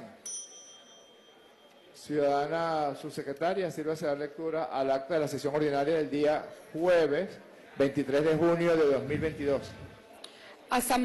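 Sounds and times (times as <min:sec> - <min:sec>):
small bell ringing: 0:00.2 - 0:02.0.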